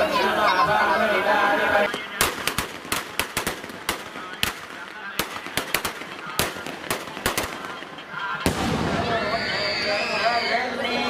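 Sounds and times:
fireworks cracking: 1.8s - 10.3s
loud firework bang: 8.4s - 9.5s
hiss with shrill whistling tones: 9.2s - 10.6s.

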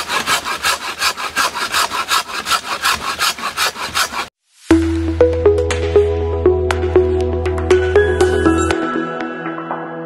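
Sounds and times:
pruning saw cutting branch: 0.0s - 4.3s.

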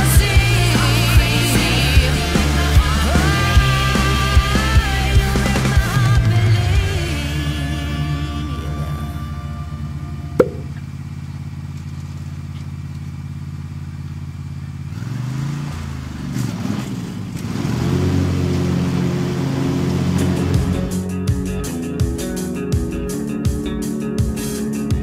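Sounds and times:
riding lawn mower engine: 0.0s - 25.0s
sharp knock: 10.4s - 10.8s.

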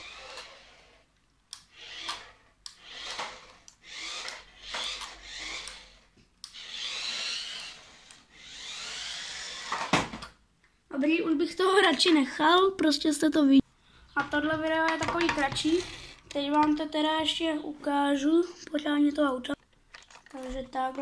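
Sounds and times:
toy car electric motor whining: 0.0s - 10.0s, 15.3s - 16.2s.

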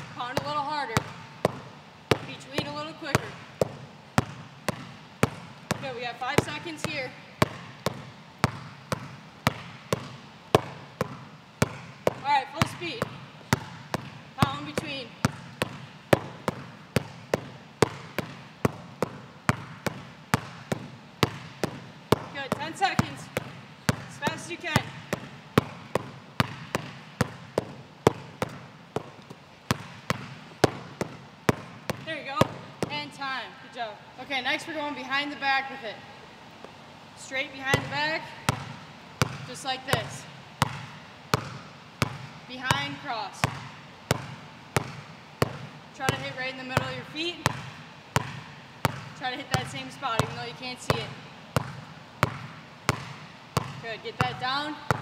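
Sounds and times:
basketball dribbled on gym floor: 0.0s - 33.6s, 36.7s - 55.0s.

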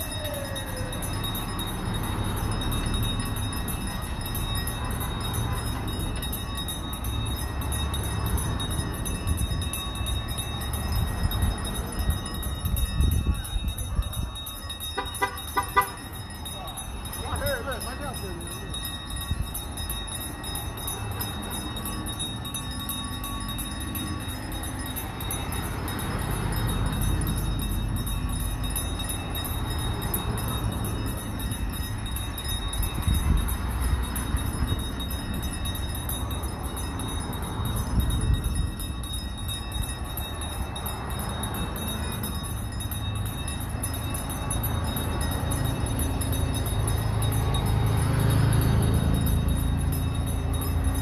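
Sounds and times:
handheld bells jangling: 0.0s - 51.0s
vehicles driving past: 0.0s - 51.0s.

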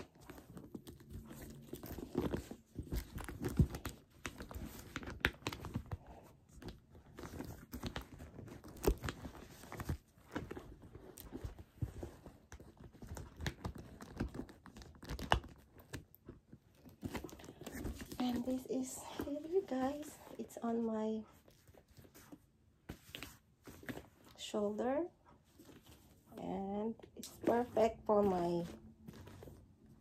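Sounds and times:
handbag rustling and scraping: 0.0s - 14.6s, 16.6s - 24.4s.

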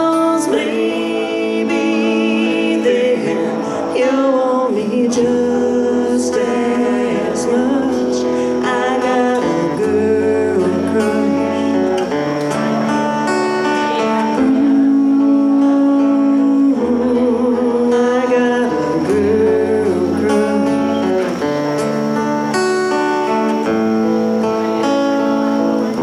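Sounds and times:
person singing: 0.0s - 23.8s
acoustic guitar: 0.0s - 26.0s.

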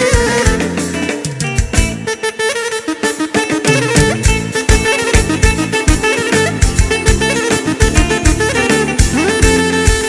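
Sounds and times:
fast drum beat: 0.0s - 2.1s, 3.4s - 10.0s
clarinets playing melody: 0.0s - 10.0s.

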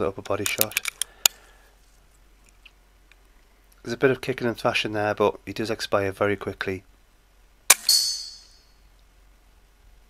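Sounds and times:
pellet striking metal ring: 7.7s - 8.8s.

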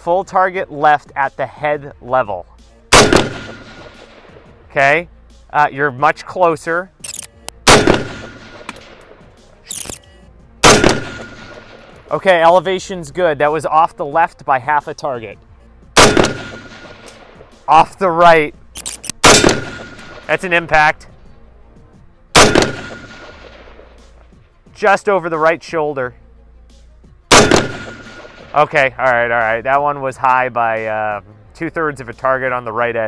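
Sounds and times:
rifle shots echoing: 2.9s - 4.5s, 7.6s - 9.3s, 10.6s - 12.1s, 16.0s - 17.6s, 18.8s - 20.9s, 22.3s - 24.0s, 27.3s - 28.6s
quieter crack: 3.0s - 4.5s, 16.0s - 17.7s, 18.5s - 20.9s, 22.4s - 24.3s.

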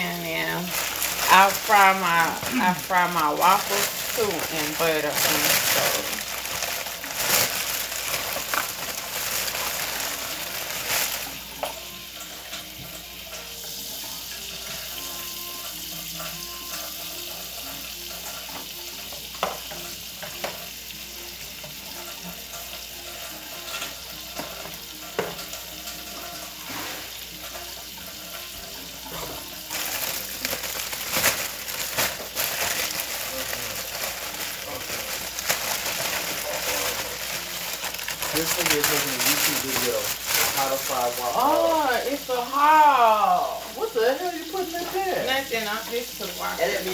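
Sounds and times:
tortilla sizzling in a pan: 0.0s - 46.9s.

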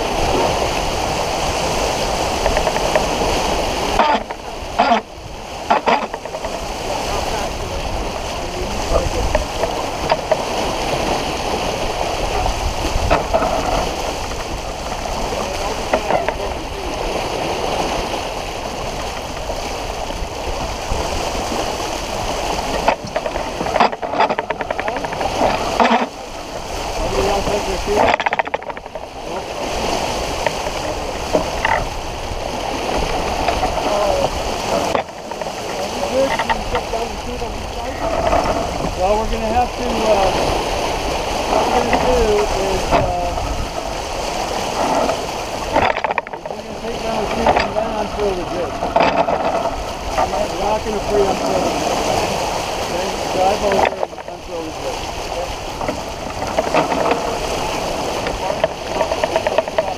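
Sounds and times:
water rushing along hull: 0.0s - 59.9s
wind noise on microphone: 0.0s - 59.9s
indistinct voices: 33.8s - 40.5s.

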